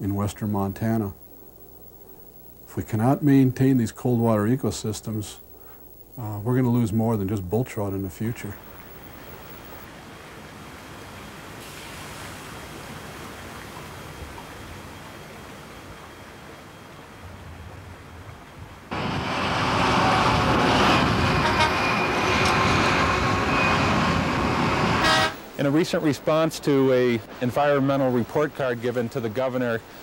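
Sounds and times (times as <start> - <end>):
large diesel trucks driving: 18.9 - 25.4.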